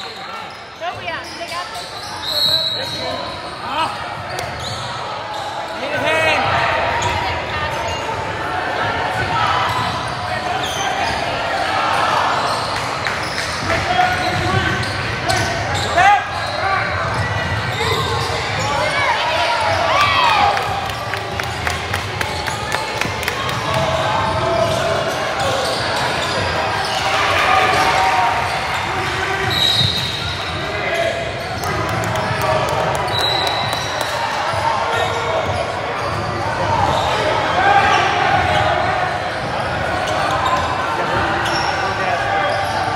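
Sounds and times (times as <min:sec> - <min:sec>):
crowd and players chattering: 0:00.0 - 0:42.9.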